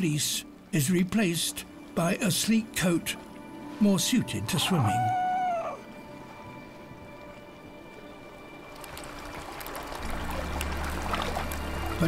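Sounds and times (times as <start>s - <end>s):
quiet background music: 0.0s - 12.0s
seal pup crying: 4.5s - 5.9s.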